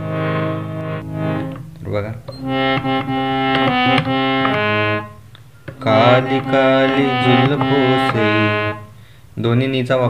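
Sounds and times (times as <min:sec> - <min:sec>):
harmonium chord: 0:00.0 - 0:09.2.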